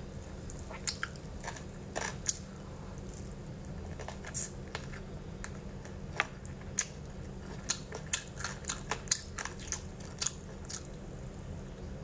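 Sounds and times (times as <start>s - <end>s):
steady low hum: 0.0s - 12.0s
close-miked chewing clicks: 0.4s - 2.4s, 3.0s - 11.0s.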